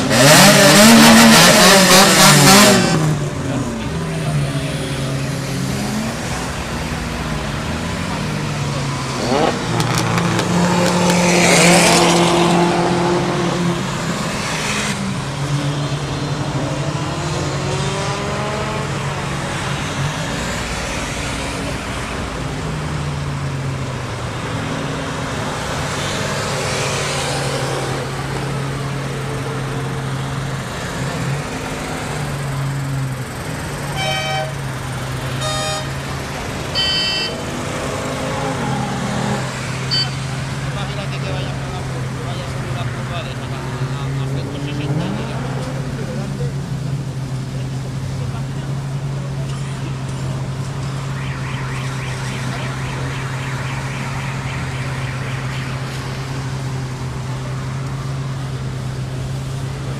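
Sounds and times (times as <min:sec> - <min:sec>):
car engines idling: 0:00.0 - 0:11.1, 0:27.8 - 0:59.9
cars passing at speed: 0:00.0 - 0:59.9
car horn toots: 0:33.9 - 0:34.6, 0:35.4 - 0:36.0, 0:36.7 - 0:37.4, 0:39.9 - 0:40.2.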